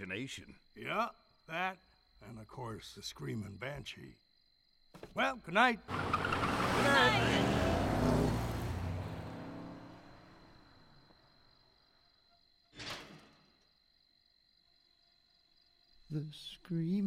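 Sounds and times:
crickets chirring: 0:00.0 - 0:17.0
car engines driving away: 0:05.9 - 0:11.1.

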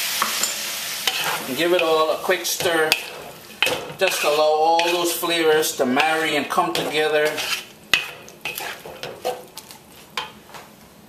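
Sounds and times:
vegetables sizzling: 0:00.0 - 0:10.6
spatula scraping metal wok: 0:00.4 - 0:10.4.

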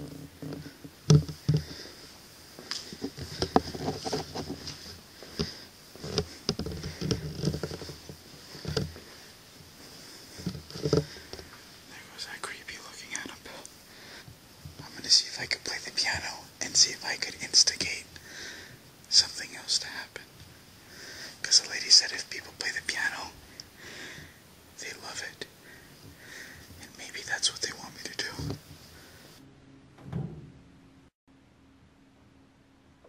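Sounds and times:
person whispering: 0:11.9 - 0:13.7, 0:14.8 - 0:18.1, 0:19.1 - 0:20.3, 0:21.4 - 0:23.4, 0:24.8 - 0:25.5, 0:26.8 - 0:28.6.

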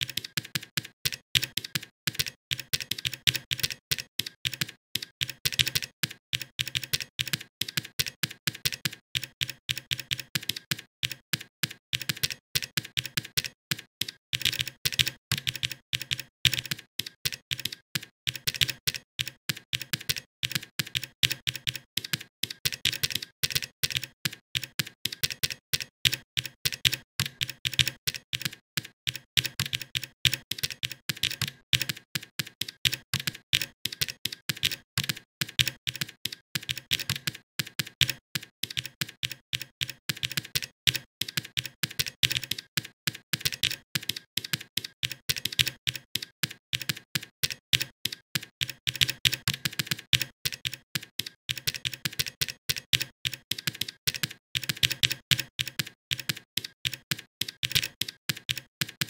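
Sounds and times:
typing on a computer keyboard: 0:00.0 - 0:59.0.

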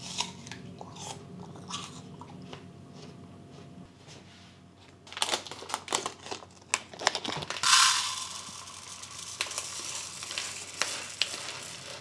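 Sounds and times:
plastic bag crinkling: 0:05.0 - 0:12.0
dry rice grains pouring: 0:07.6 - 0:12.0.

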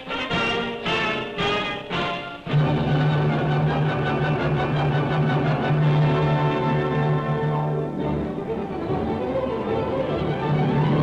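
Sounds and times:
orchestral music: 0:00.0 - 0:11.0.

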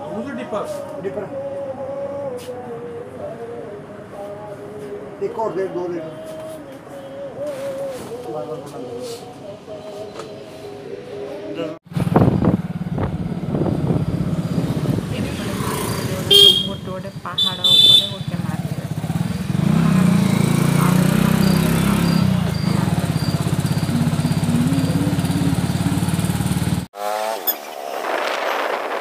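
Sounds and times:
wind rumble on microphone: 0:11.9 - 0:16.2, 0:27.8 - 0:29.0
motorbike engine: 0:11.9 - 0:27.6
horn toots: 0:15.8 - 0:27.4.

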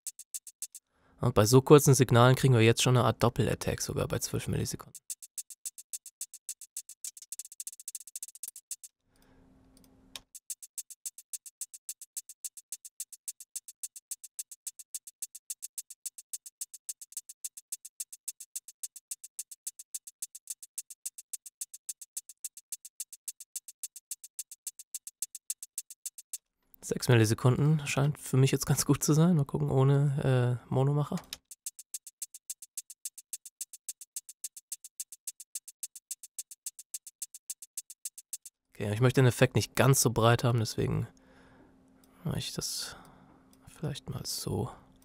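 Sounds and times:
electronic percussion ticks: 0:00.0 - 0:00.9, 0:01.5 - 0:09.0, 0:09.7 - 0:29.2, 0:31.1 - 0:41.2
faint hum: 0:38.8 - 0:44.9.

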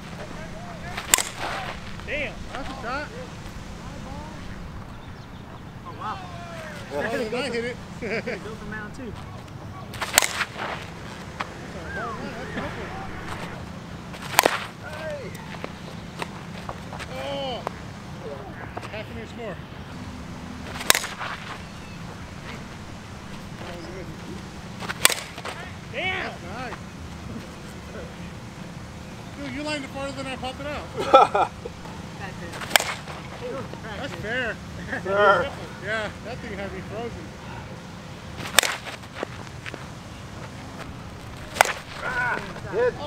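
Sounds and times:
bat cracking on softball: 0:00.9 - 0:01.8, 0:09.9 - 0:11.5, 0:14.1 - 0:16.4, 0:20.6 - 0:22.2, 0:24.8 - 0:25.6, 0:32.6 - 0:33.3, 0:38.4 - 0:39.3, 0:41.2 - 0:42.6.

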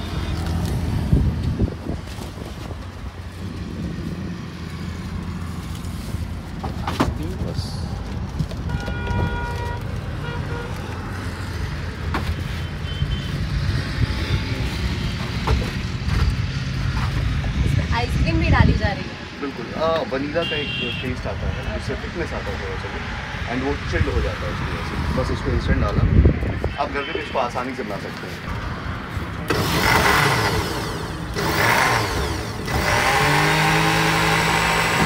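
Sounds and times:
traffic engine rumble: 0:00.0 - 0:35.0
vehicle horn: 0:08.6 - 0:10.9, 0:12.6 - 0:13.4, 0:20.4 - 0:21.6.

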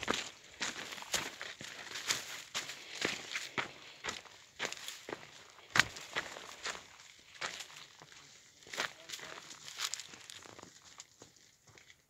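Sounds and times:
footsteps crunching dry grass: 0:00.0 - 0:12.0.

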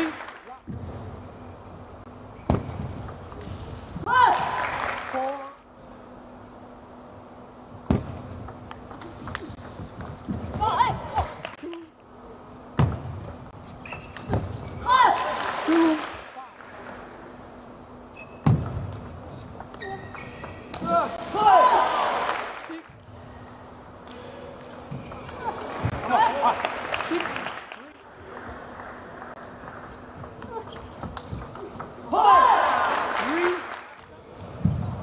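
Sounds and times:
players shouting: 0:20.8 - 0:22.6, 0:32.0 - 0:33.7.

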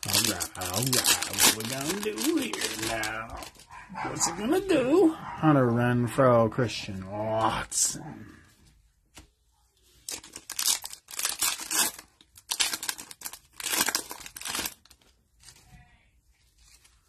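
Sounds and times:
foil wrapper tearing and crinkling: 0:00.0 - 0:03.6, 0:10.0 - 0:15.6
cards rustling: 0:00.0 - 0:04.3, 0:09.1 - 0:15.7.

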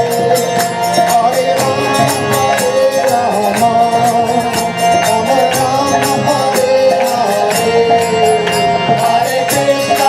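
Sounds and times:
harmonium: 0:00.0 - 0:10.0
percussion beat: 0:00.0 - 0:10.0.

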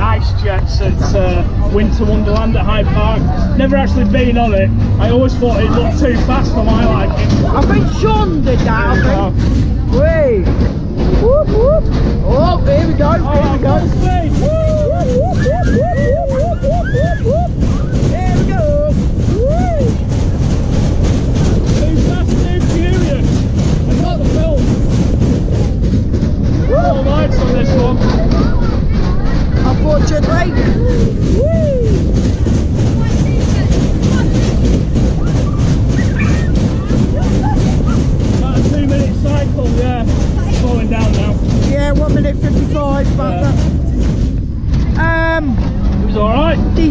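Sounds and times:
ride cars rumbling on track: 0:00.0 - 0:46.9
riders whooping and yelling: 0:11.0 - 0:12.6, 0:13.9 - 0:20.2, 0:26.5 - 0:29.6, 0:30.2 - 0:33.1.

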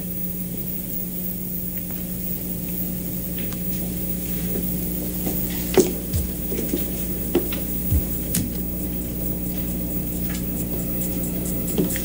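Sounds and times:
steady low hum with hiss: 0:00.0 - 0:12.0.

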